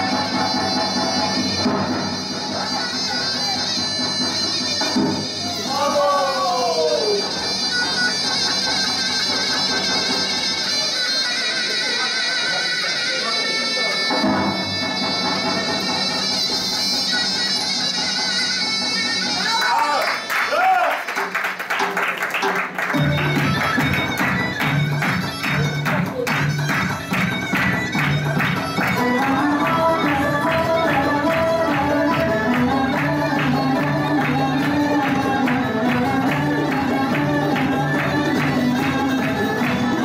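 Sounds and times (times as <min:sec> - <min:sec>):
reedy wind instrument melody: 0:00.0 - 0:20.0, 0:23.0 - 0:40.0.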